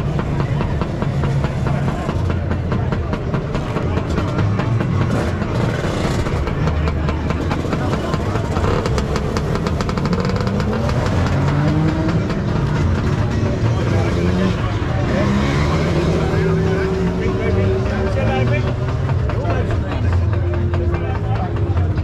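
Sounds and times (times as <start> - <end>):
motor scooter engines revving: 0.0 - 22.0.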